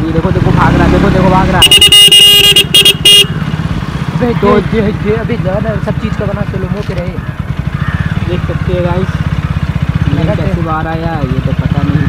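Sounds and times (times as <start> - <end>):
engine idling: 0.0 - 12.0
vehicle horn blaring: 1.6 - 3.5.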